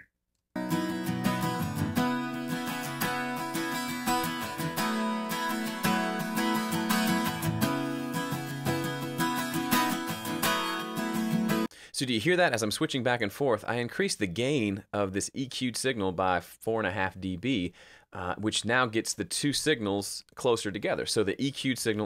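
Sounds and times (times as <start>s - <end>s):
acoustic guitar playing: 0.6s - 11.7s.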